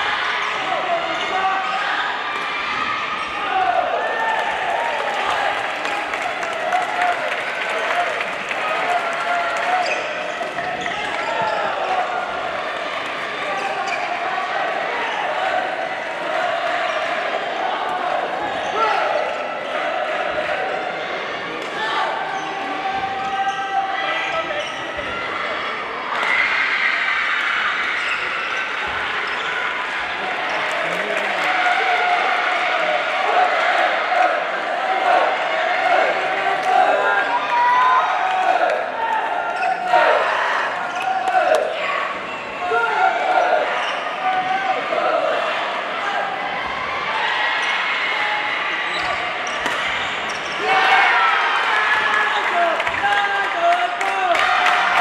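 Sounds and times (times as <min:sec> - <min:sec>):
echoing voices: 0:00.0 - 0:55.0
shoes squeaking on court floor: 0:09.7 - 0:12.0, 0:13.4 - 0:14.3, 0:48.9 - 0:50.6.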